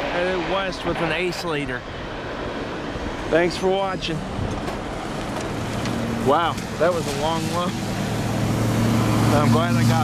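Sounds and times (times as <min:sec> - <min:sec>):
tyres hissing on wet pavement: 0:02.0 - 0:10.0
car engine running low: 0:04.0 - 0:10.0.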